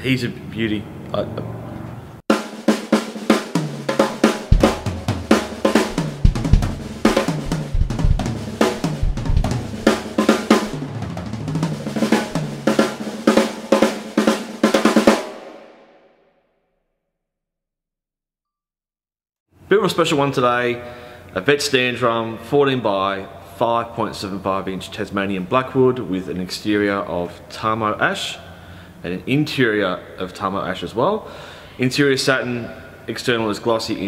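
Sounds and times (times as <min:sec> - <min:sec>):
drum kit playing: 0:02.3 - 0:15.5
tom hits stepping down: 0:04.2 - 0:10.8.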